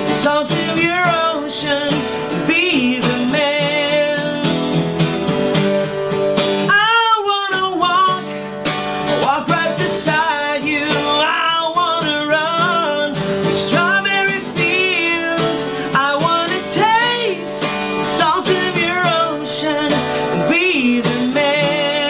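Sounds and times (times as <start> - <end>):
man singing with vibrato: 0.0 - 5.3, 6.6 - 22.0
strummed acoustic guitar: 0.0 - 22.0.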